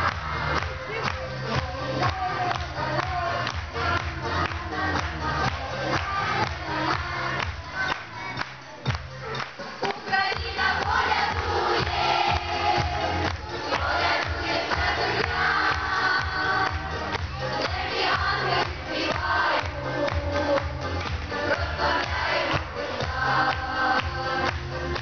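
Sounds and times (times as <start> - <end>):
children's choir singing: 0.0 - 8.4, 9.8 - 25.0
backing track with beat and bass: 0.0 - 25.0.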